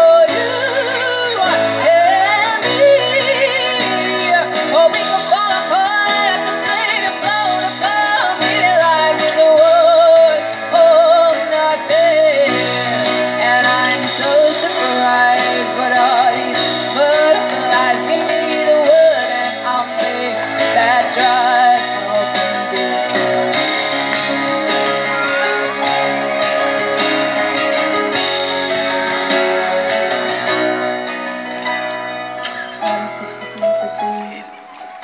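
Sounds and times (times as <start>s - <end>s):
woman singing with vibrato: 0.0s - 23.9s
electric and acoustic guitar: 0.0s - 35.0s.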